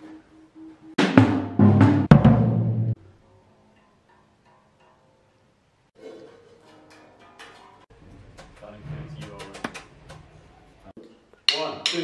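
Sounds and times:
drum kit rapid hits: 0.7s - 3.0s.

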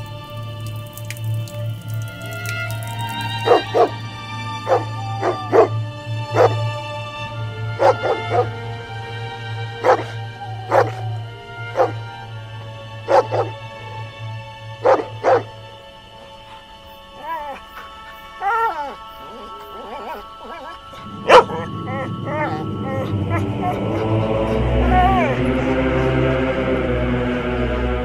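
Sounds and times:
low music drone: 0.0s - 28.0s
dog barking: 3.4s - 4.0s, 4.6s - 5.8s, 6.4s - 6.6s, 7.8s - 8.6s, 9.8s - 11.0s, 11.7s - 12.0s, 13.1s - 13.6s, 14.8s - 15.6s, 18.4s - 23.8s.

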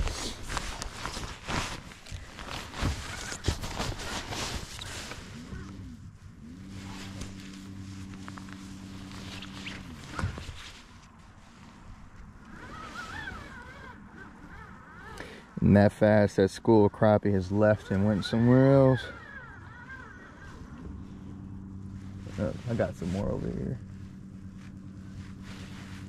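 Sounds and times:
electric trolling motor running: 2.0s - 15.7s, 17.4s - 26.0s
faint warbling calls: 4.7s - 10.6s, 12.5s - 15.6s, 17.5s - 26.0s.

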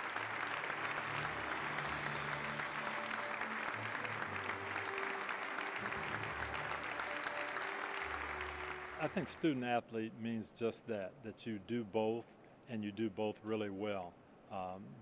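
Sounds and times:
audience applauding: 0.0s - 9.6s.

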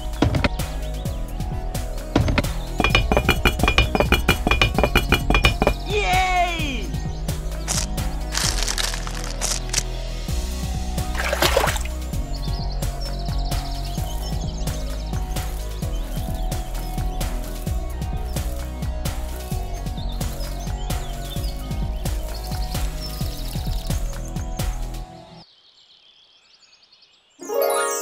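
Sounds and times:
bird chirps: 0.0s - 9.0s
music with steady beat: 0.0s - 25.0s.

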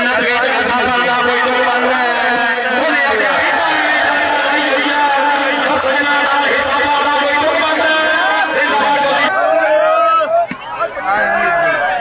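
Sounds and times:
man commentating: 0.0s - 9.3s.

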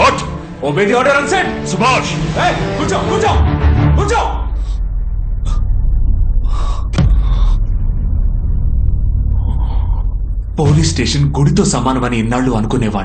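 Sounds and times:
low rumbling film score drone: 0.0s - 13.0s.

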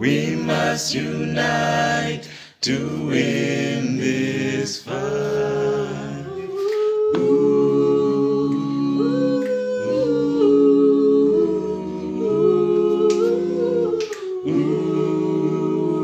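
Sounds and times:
group singing a cappella: 0.0s - 16.0s.

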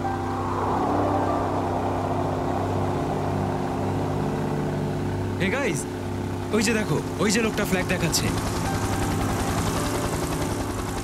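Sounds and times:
motor engine droning: 0.0s - 11.0s.

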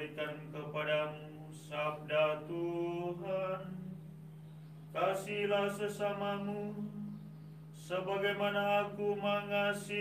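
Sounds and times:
man chanting liturgical melody: 0.0s - 4.0s, 4.9s - 10.0s
steady low sustained tone: 0.0s - 10.0s.

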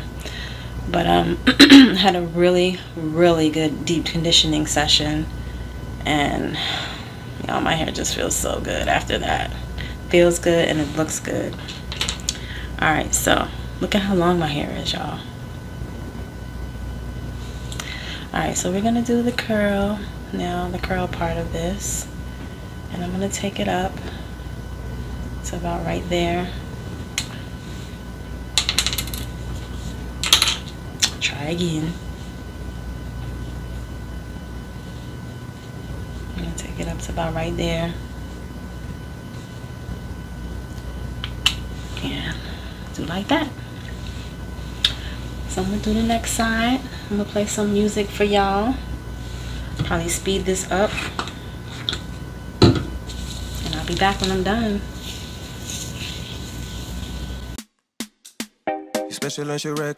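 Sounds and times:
room hum and hiss: 0.0s - 57.6s.

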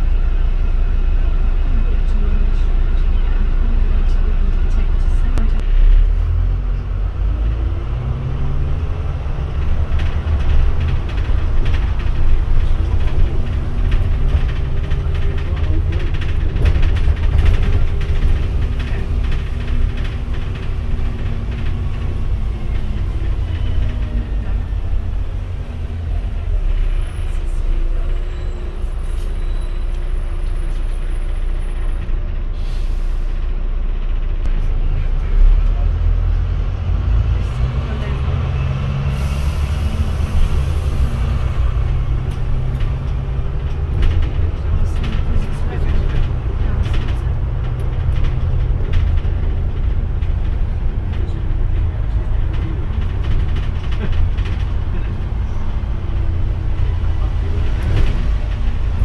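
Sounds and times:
bus engine drone: 0.0s - 59.0s
road noise: 0.0s - 59.0s.

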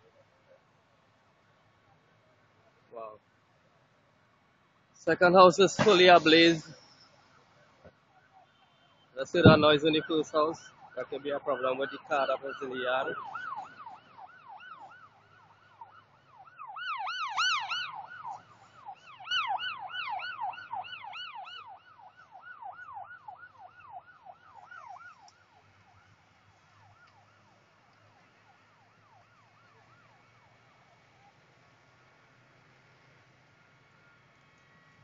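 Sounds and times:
emergency siren yelping: 5.4s - 31.5s.

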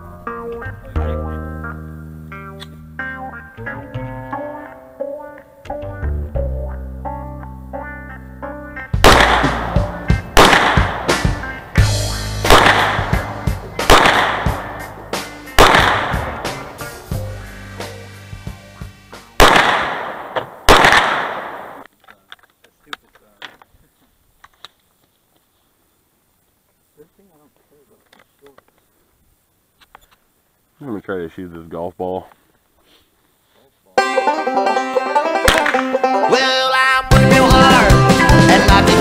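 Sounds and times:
music with plucked strings and bass: 0.0s - 19.4s, 34.0s - 39.0s
pistol shots: 9.0s - 11.4s, 12.4s - 16.7s, 19.4s - 21.9s.

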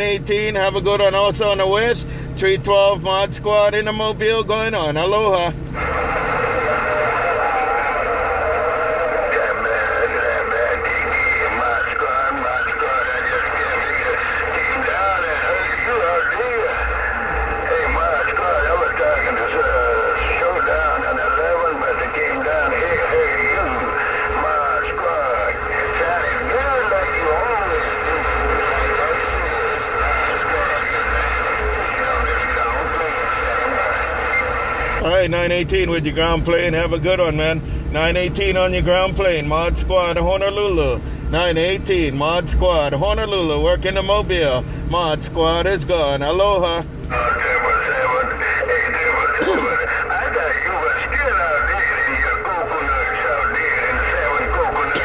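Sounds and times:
garbled radio voice: 0.0s - 55.0s
radio static: 0.0s - 55.0s.

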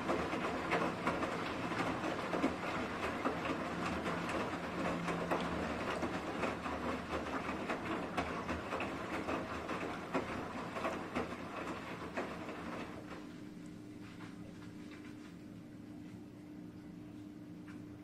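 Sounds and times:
washing machine water sloshing: 0.0s - 16.2s.

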